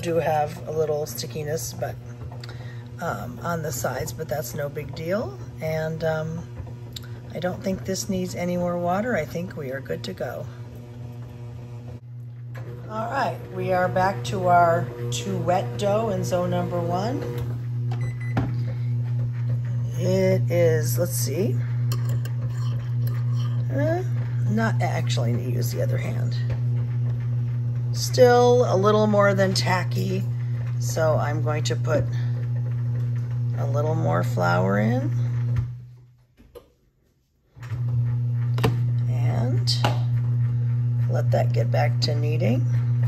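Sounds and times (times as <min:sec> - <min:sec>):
bread machine motor humming: 0:00.0 - 0:36.0, 0:37.5 - 0:43.0.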